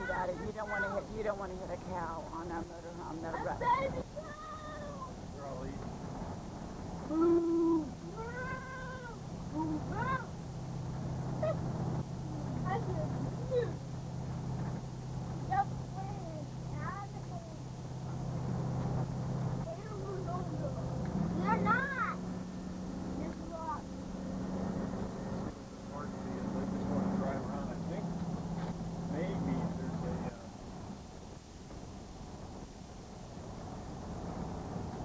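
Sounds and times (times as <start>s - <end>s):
motorhome engine droning: 0.0s - 35.0s.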